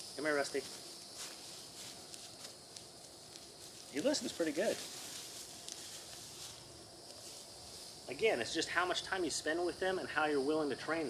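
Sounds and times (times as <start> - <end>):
high-pitched hiss: 0.0 - 11.0.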